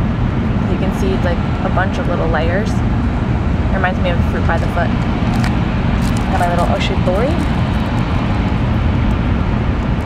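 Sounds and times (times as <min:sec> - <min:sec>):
train running low rumble: 0:00.0 - 0:10.0.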